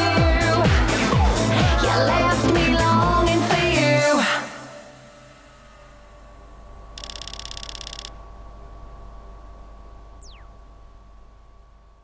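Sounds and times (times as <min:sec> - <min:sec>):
low steady hum: 0:04.5 - 0:12.0
rapid high electronic ticks: 0:07.0 - 0:08.2.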